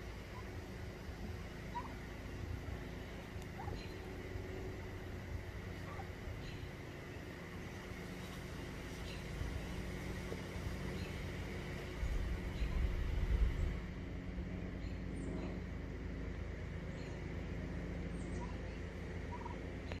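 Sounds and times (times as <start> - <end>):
turkey gobbling: 1.7 - 2.1, 3.6 - 4.0, 5.8 - 6.2, 19.3 - 19.6
low rumble on microphone: 7.6 - 15.8.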